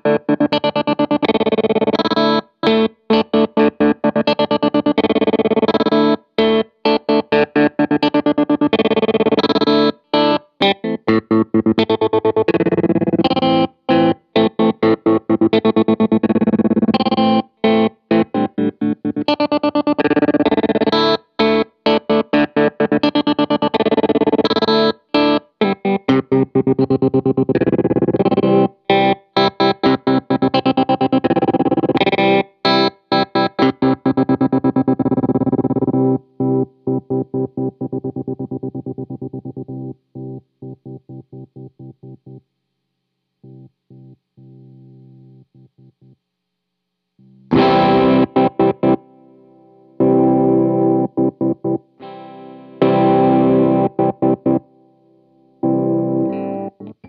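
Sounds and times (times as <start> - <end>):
chopped electric guitar chords: 0.0 - 42.4, 47.2 - 57.0.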